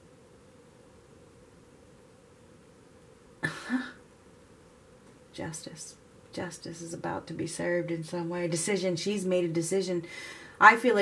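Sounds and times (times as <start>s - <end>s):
woman coughing: 3.4s - 4.0s.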